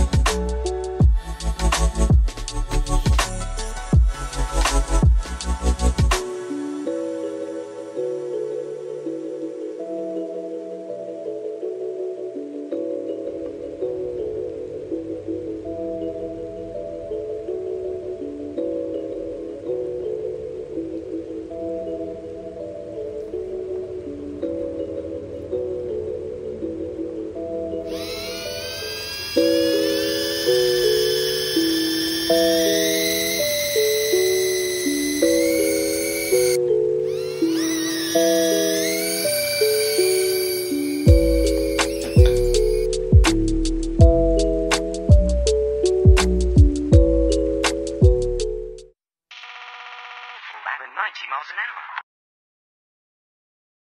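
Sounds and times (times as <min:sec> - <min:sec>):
piano-like background music: 0:00.0 - 0:49.0
toy drone motors whining: 0:27.9 - 0:42.9, 0:49.3 - 0:50.6.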